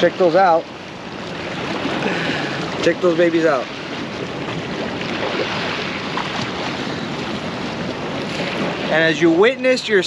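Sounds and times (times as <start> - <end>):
sea water washing against rocks: 0.0 - 10.0
wind buffeting microphone: 0.0 - 10.0.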